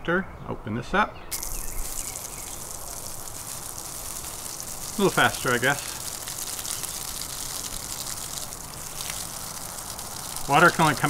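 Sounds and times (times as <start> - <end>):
water spraying from hose: 1.3 - 11.0.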